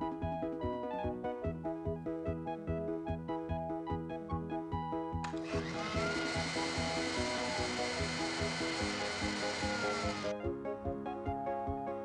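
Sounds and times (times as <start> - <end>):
background music: 0.0 - 12.0
blender motor running: 5.3 - 10.3.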